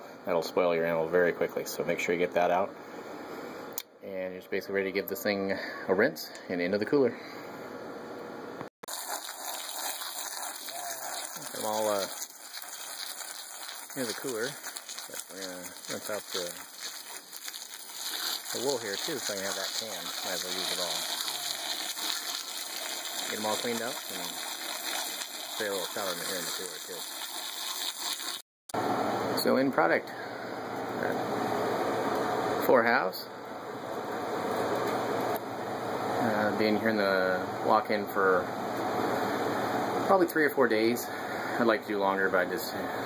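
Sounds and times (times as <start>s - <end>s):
refrigeration unit running: 0.0s - 27.1s, 28.8s - 43.0s
hose water spraying: 8.9s - 28.4s.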